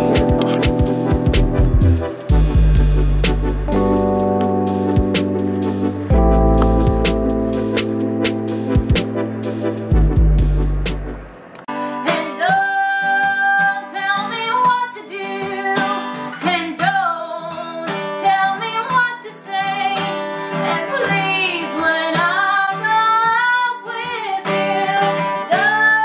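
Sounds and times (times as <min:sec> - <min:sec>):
strummed acoustic guitar: 0:00.0 - 0:10.6, 0:11.7 - 0:23.4, 0:24.0 - 0:25.8
woman singing: 0:12.0 - 0:26.0.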